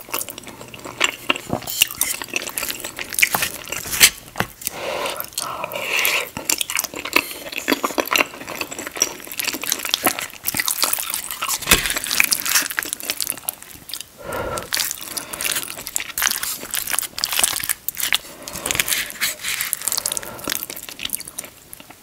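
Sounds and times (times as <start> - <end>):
chewing with wet mouth clicks: 0.0 - 22.0.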